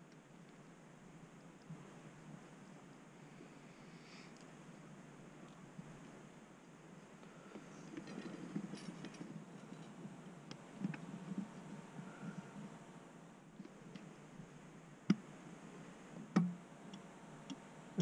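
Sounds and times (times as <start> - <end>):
handling noise: 7.0 - 12.8.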